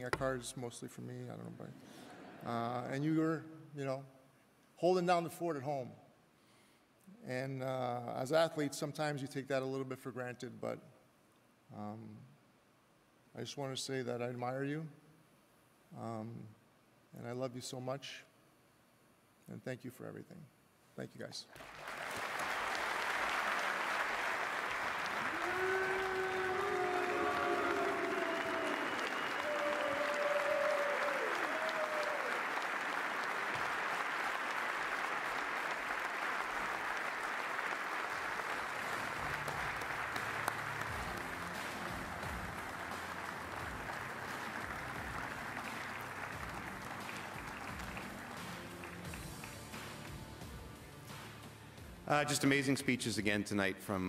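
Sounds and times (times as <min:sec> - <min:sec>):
audience applauding: 0:21.6 - 0:50.6
audience cheering: 0:21.9 - 0:49.0
music: 0:25.9 - 0:30.2, 0:38.2 - 0:53.6.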